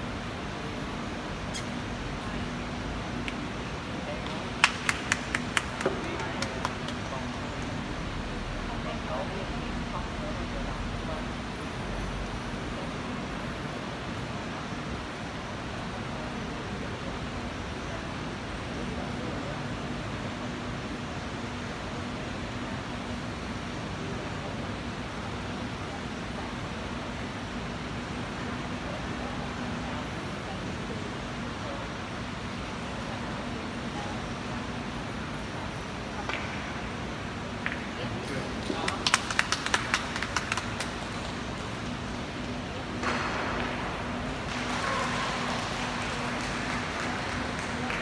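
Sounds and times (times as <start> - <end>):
low hum and hiss: 0.0 - 48.0.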